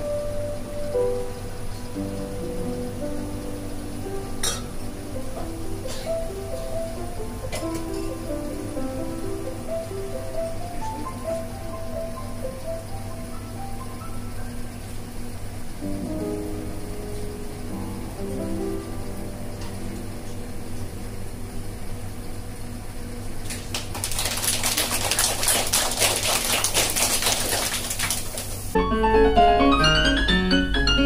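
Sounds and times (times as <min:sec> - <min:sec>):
soft grand piano notes: 0:00.0 - 0:23.5, 0:28.6 - 0:31.0
steady low hum: 0:00.0 - 0:28.8
audience applause: 0:23.4 - 0:28.8.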